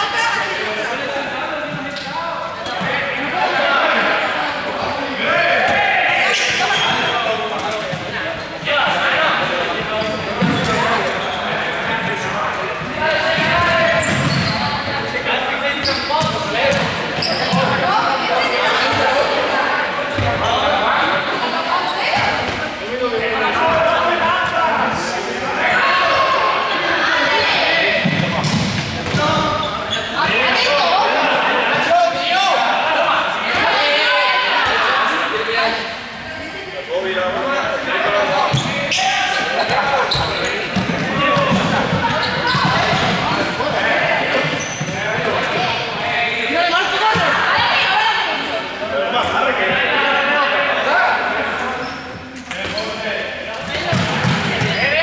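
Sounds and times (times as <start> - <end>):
players shouting: 2.3 - 36.0, 37.3 - 52.0
balls bouncing on hard floor: 28.0 - 29.6, 39.7 - 43.4, 53.8 - 54.8.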